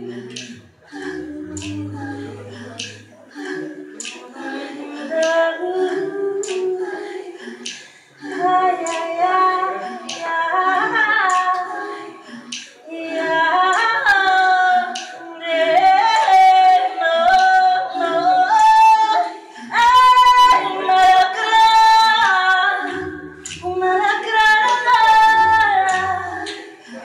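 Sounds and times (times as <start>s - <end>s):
women singing a cappella: 0.0s - 27.0s.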